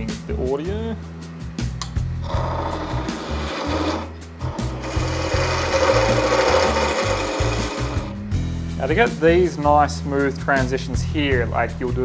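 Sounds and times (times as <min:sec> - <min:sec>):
chisel shaving wood on lathe: 0:02.2 - 0:08.2.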